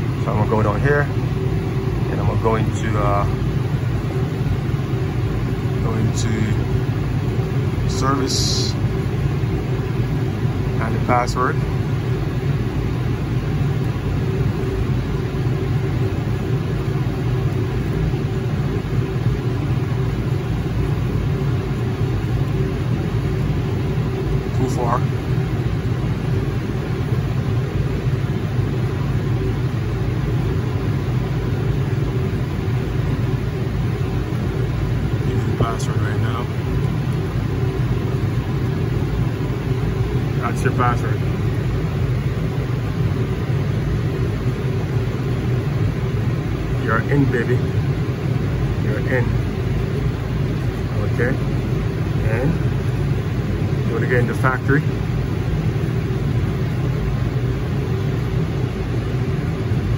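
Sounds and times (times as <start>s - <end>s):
air conditioning unit drone: 0.0s - 59.9s.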